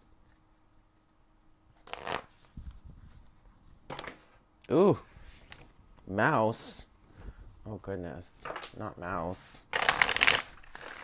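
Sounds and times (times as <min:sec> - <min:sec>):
cards rustling: 0:09.7 - 0:11.0.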